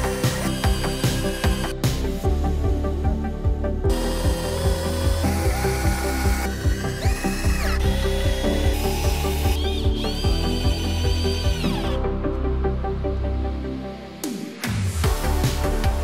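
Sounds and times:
cordless drill driving screws: 0.0s - 1.7s, 3.9s - 12.0s
electronic music with steady beat: 13.3s - 16.0s.

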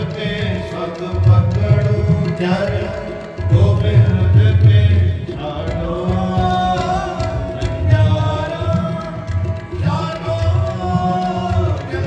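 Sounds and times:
tabla drumming: 0.0s - 12.0s.

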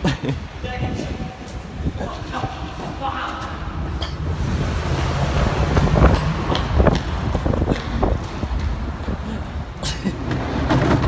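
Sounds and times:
wind buffeting microphone: 0.4s - 11.0s.

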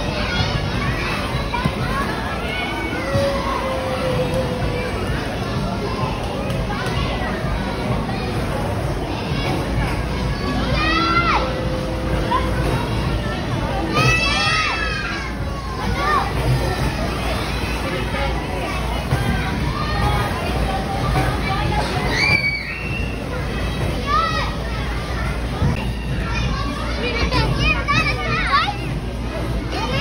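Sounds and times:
children shouting and squealing: 0.0s - 8.3s, 9.0s - 21.1s, 21.8s - 28.9s
crowd hubbub: 0.0s - 30.0s.

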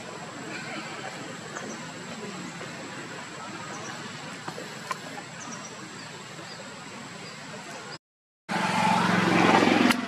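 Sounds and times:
vehicle engine running: 8.5s - 10.0s.

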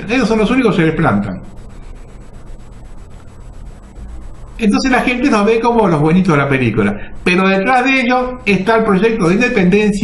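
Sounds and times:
background hiss: 0.0s - 10.0s
low hum: 0.0s - 10.0s.

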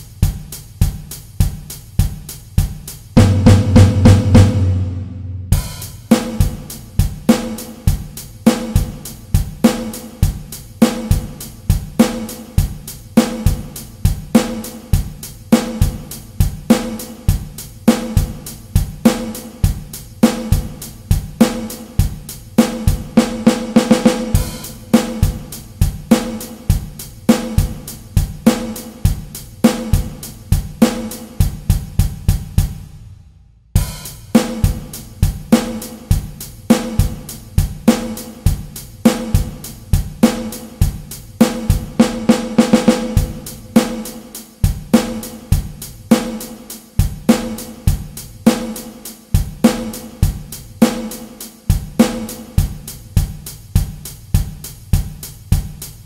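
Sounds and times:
drum kit playing a pop groove: 0.0s - 56.0s.

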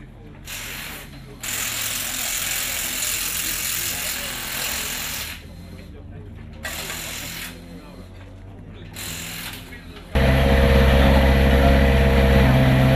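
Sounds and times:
hissing air spray bursts: 0.4s - 5.8s, 6.6s - 7.7s.

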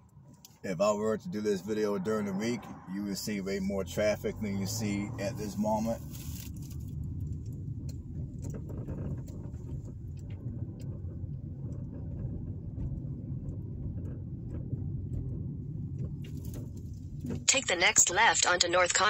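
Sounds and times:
car engine and road noise: 0.0s - 19.0s.

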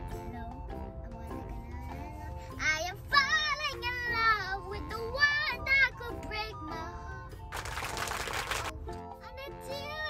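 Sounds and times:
girl singing along: 0.0s - 7.5s, 8.8s - 10.0s
pop song playing: 0.0s - 10.0s.

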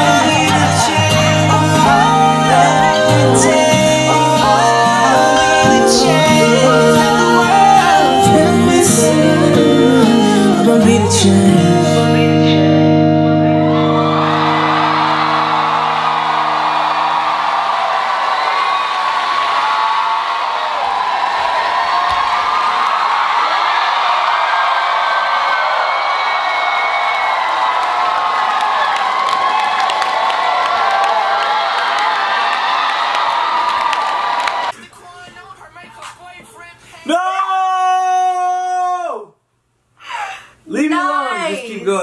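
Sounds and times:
audience cheering and whooping: 0.0s - 10.8s, 13.2s - 34.8s
dance music chord: 0.0s - 18.0s
clapping: 27.4s - 34.8s.

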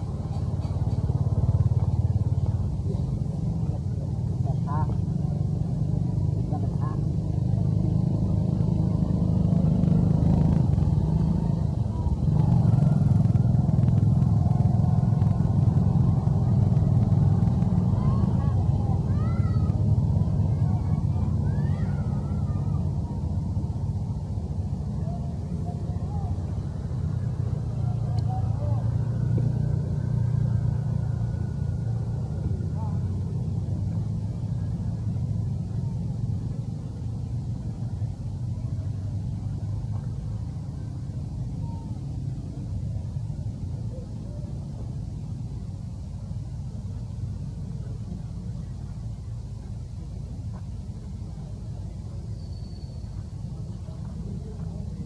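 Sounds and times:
faint voices calling: 0.0s - 55.0s
vehicle engine rumbling: 0.0s - 55.0s.

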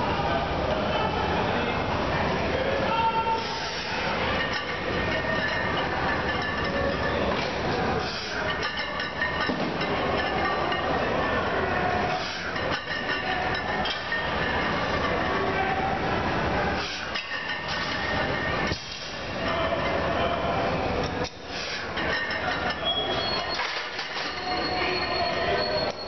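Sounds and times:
busy weight room din: 0.0s - 26.0s
barbells and weight plates clinking: 4.4s - 7.2s, 8.5s - 11.0s.

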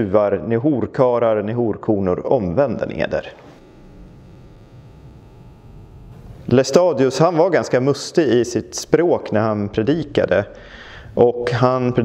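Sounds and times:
low steady hum: 2.8s - 12.0s
faint hiss: 3.0s - 9.3s.

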